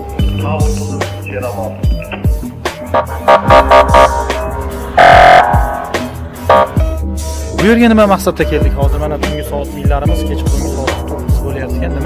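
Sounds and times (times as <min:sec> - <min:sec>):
electronic hip-hop beat: 0:00.0 - 0:12.0
held synth chord: 0:03.0 - 0:07.0
deep bass-drum hits: 0:03.2 - 0:07.6.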